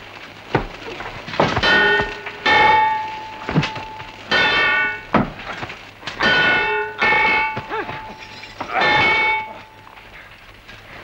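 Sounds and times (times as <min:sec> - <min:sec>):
swords clashing: 0:03.5 - 0:05.0, 0:06.2 - 0:09.8.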